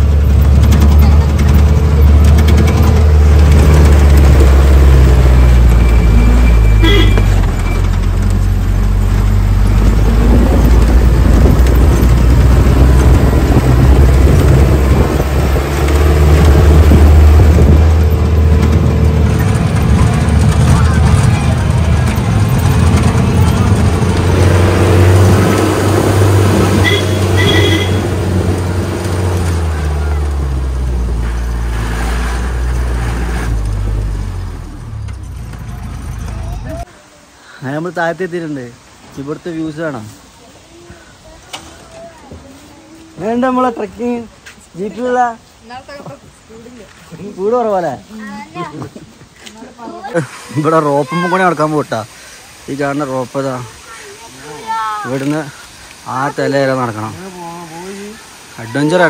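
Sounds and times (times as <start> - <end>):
car engine running loudly: 0.0 - 36.8.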